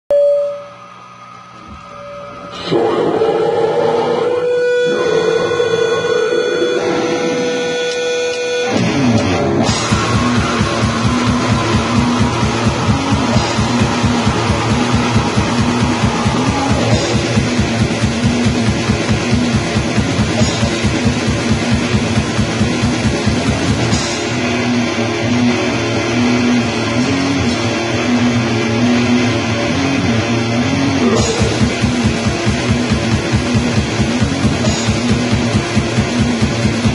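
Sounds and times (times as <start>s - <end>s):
distorted electric guitar riff: 0.6s - 36.9s
fast drumming: 9.6s - 24.5s, 31.1s - 36.9s.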